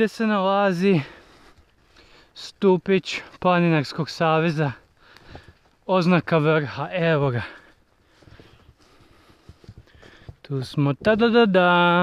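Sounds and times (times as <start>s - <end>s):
footsteps on grass and stones: 0.6s - 12.0s.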